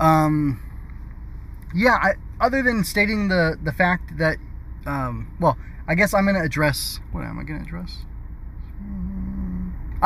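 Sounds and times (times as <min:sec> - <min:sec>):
low background hum: 0:00.0 - 0:10.0
man humming hmm: 0:08.6 - 0:10.0.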